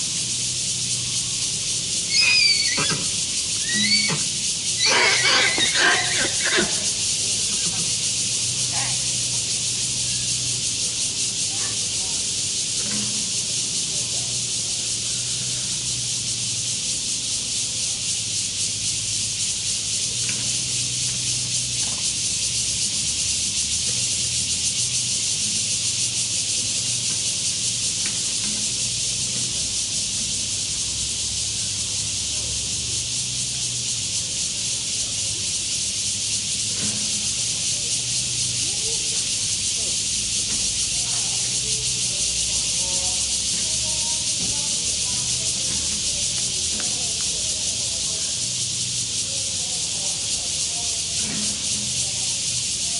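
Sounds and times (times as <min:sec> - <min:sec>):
cicada chorus hiss: 0:00.0 - 0:52.9.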